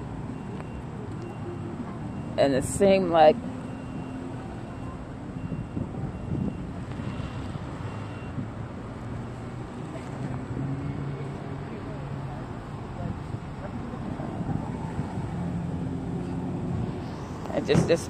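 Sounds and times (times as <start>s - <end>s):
low rumble of car traffic: 0.0s - 18.0s.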